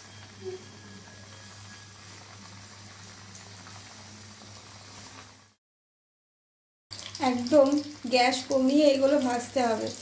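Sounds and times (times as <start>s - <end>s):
oil bubbling and sizzling: 0.0s - 5.6s, 6.9s - 10.0s.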